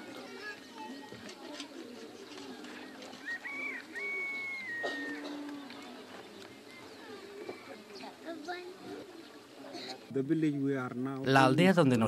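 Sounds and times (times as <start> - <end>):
bird whistling calls: 3.2 - 5.3.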